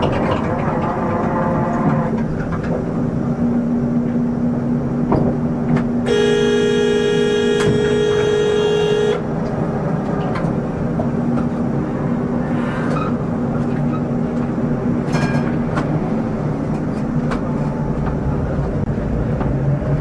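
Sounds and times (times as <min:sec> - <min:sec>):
horn blast: 0:06.1 - 0:09.3.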